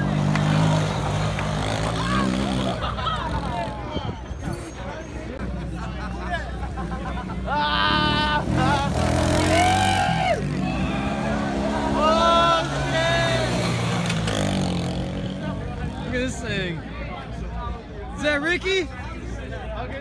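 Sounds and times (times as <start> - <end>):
people yelling and whooping: 0.6 - 6.4, 7.5 - 14.0.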